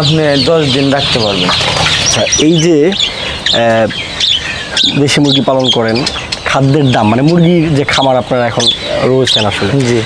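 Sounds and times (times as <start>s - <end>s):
poultry clucking and calling: 0.0s - 10.0s.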